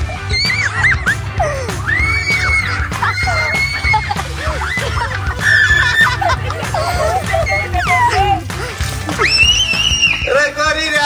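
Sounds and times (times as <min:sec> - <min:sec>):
drawn-out cry: 0:00.0 - 0:10.2
music: 0:00.0 - 0:11.0
child shrieking: 0:00.2 - 0:06.1.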